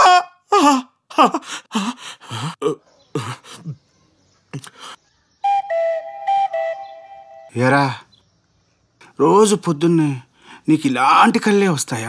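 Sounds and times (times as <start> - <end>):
whistle-like tune: 5.4 - 7.6.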